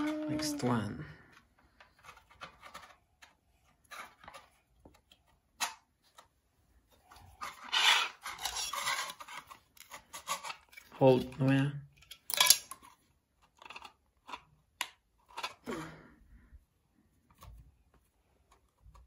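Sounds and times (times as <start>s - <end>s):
plastic parts scraping: 1.3s - 6.3s, 6.9s - 15.7s
plastic toy parts clicking: 7.7s - 15.6s.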